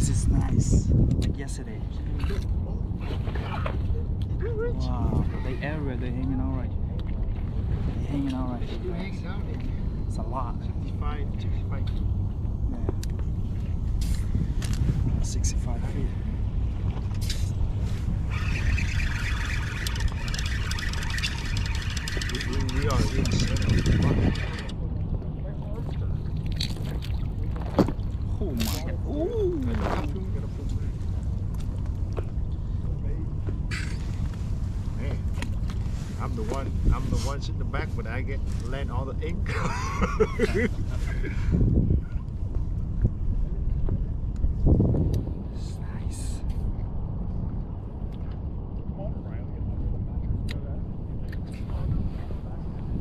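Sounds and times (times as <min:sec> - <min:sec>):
wind and water rumble: 0:00.0 - 0:53.0
high steady whirring: 0:18.1 - 0:24.9
people talking quietly: 0:18.4 - 0:31.2.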